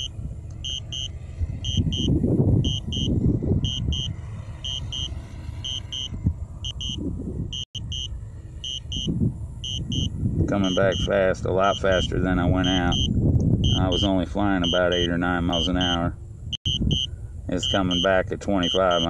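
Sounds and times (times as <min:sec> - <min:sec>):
short high beeps: 0:00.0 - 0:01.1, 0:01.7 - 0:02.1, 0:02.7 - 0:03.1, 0:03.7 - 0:06.1, 0:06.7 - 0:07.0, 0:07.8 - 0:10.1, 0:10.7 - 0:11.1, 0:12.6 - 0:14.0, 0:16.7 - 0:19.0
wind rumbling on microphone: 0:00.0 - 0:19.0.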